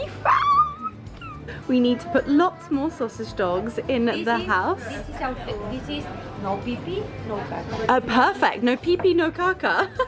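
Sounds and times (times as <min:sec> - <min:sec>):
high whimpering cry: 0:00.0 - 0:01.6
woman's voice: 0:01.6 - 0:10.0.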